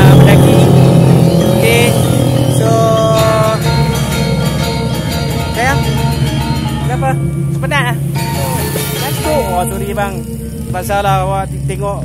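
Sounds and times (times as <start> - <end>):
music playing: 0.0 - 11.8
vehicle engine humming: 0.0 - 12.0.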